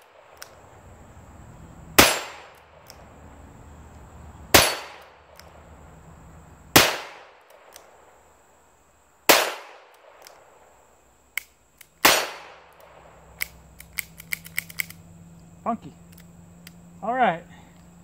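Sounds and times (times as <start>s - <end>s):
sharp click: 0.3s - 0.6s, 2.5s - 3.0s, 4.7s - 5.6s, 9.9s - 10.4s, 11.3s - 15.0s, 16.1s - 16.8s
revolver shots with echo: 2.0s - 2.8s, 4.5s - 5.2s.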